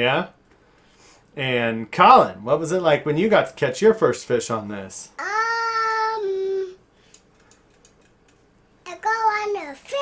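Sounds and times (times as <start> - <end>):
child saying umm: 5.2 - 6.8
faint clicks: 7.0 - 8.4.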